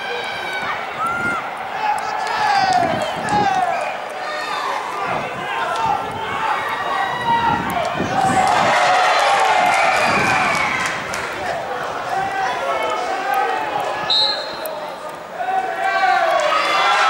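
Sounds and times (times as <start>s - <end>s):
steady background noise: 0.0s - 17.0s
voices shouting and calling out: 0.0s - 17.0s.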